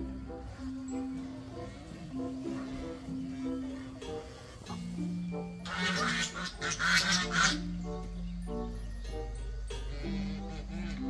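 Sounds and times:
background music: 0.0 - 11.0
hen squawking: 5.7 - 7.8.

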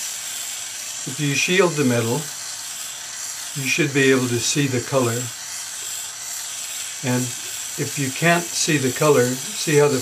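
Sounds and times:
gas torch flame hissing: 0.0 - 10.0.

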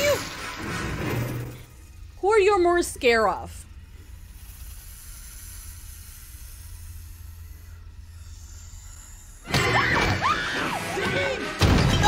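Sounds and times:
low hum: 0.0 - 10.8.

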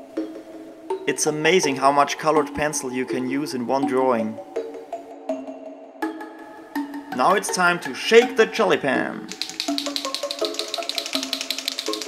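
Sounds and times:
background music with held notes: 0.0 - 12.0
gel pen rattling when shaken: 9.3 - 12.0.

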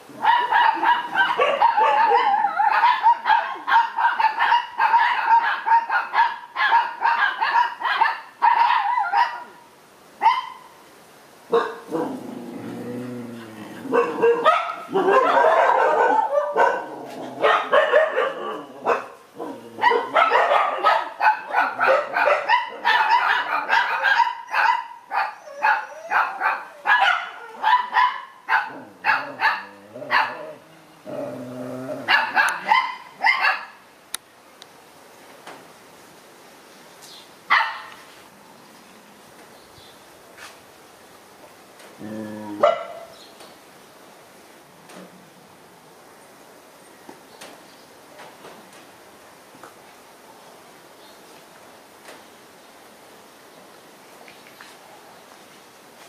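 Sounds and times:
dogs barking: 0.1 - 9.6, 11.5 - 12.2, 13.8 - 30.6, 32.0 - 33.8, 37.5 - 38.0, 42.6 - 43.1.

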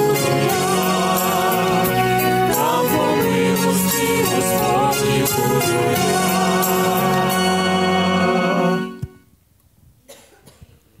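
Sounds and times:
music: 0.0 - 9.4
person coughing: 10.0 - 10.7.

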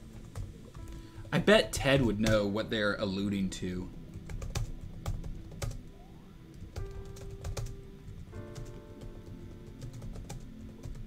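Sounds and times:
soft background music: 0.0 - 11.0
keyboard typing clicks: 6.5 - 11.0.

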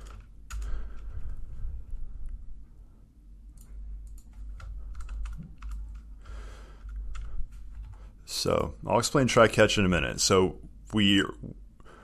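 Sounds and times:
keyboard typing: 0.0 - 1.2, 3.6 - 6.1, 6.7 - 8.0.

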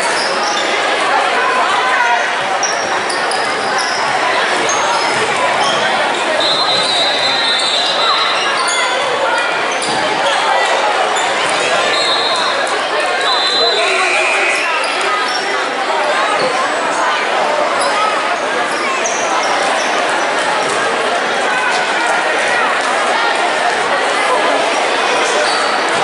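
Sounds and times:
sneaker squeaks: 0.0 - 0.9, 2.1 - 15.7, 17.8 - 20.0, 25.2 - 26.0
voices echoing in a hall: 0.0 - 26.0.

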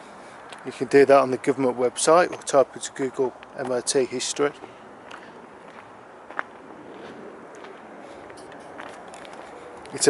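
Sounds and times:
footsteps crunching on gravel: 3.2 - 10.0.

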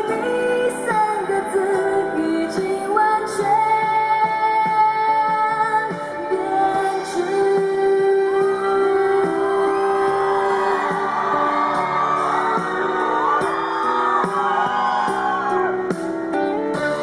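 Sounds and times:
woman singing into microphone: 0.0 - 14.4
pop backing track: 0.0 - 17.0
fans whooping and cheering: 8.4 - 17.0.

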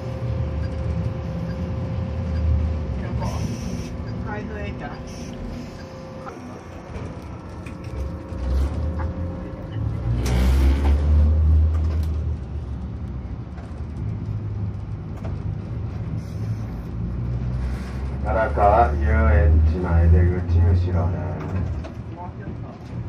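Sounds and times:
tram rumbling on rails: 0.0 - 23.0.

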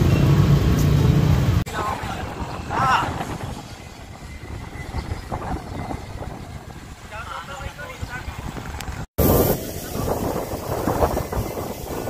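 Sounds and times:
wind buffeting microphone: 1.4 - 12.0.

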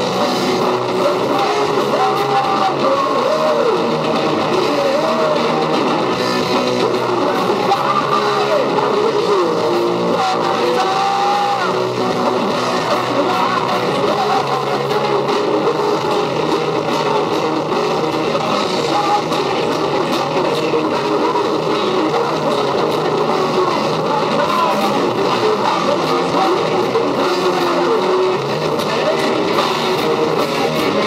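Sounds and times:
bass guitar: 0.0 - 31.0
drums: 0.0 - 31.0
electric guitar: 0.0 - 31.0.

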